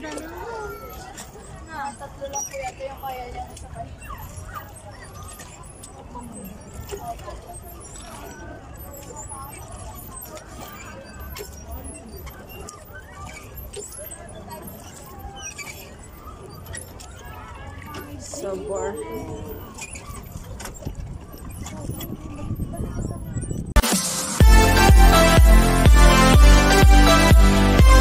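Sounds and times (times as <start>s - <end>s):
pedal boat knocking and splashing: 0.0s - 23.8s
faint background voices: 0.0s - 24.0s
wind rumble on microphone: 20.4s - 23.8s.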